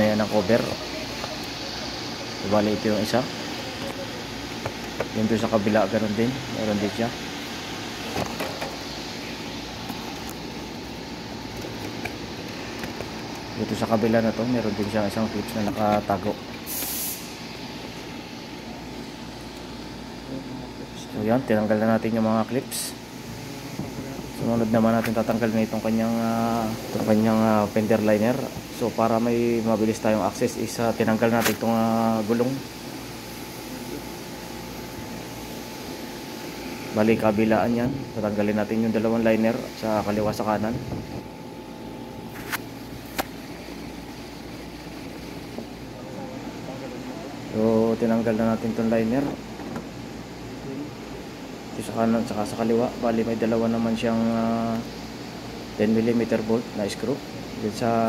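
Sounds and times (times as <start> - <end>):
low background rumble and hiss: 0.0 - 58.0
steady low hum: 0.0 - 58.0
short high hiss: 16.6 - 17.5.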